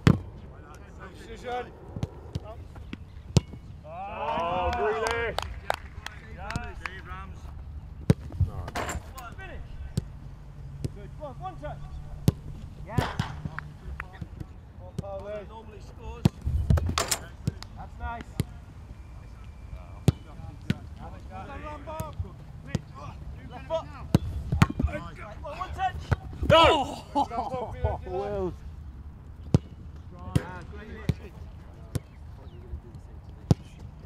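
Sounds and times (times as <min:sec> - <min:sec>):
distant shouts: 0:03.8 - 0:07.0, 0:24.8 - 0:27.4.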